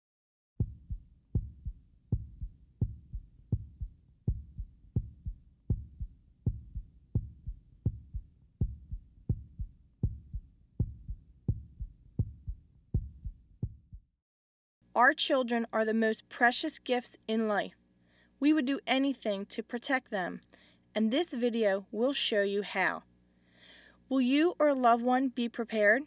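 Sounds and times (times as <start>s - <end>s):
heartbeat thumps: 0.6s - 14.1s.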